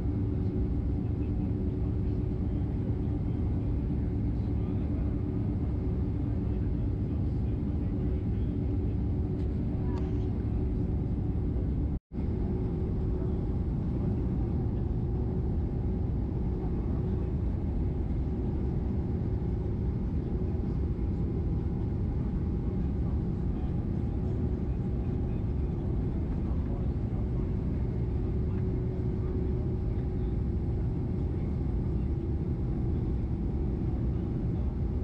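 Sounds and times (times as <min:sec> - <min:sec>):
jet engines low rumble: 0:00.0 - 0:35.0
steady cabin hum: 0:00.0 - 0:35.0.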